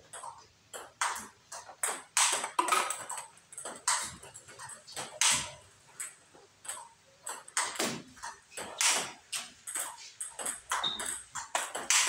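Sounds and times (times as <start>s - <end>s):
table tennis balls hitting bats: 0.0s - 12.0s
ball bouncing on table: 0.1s - 12.0s.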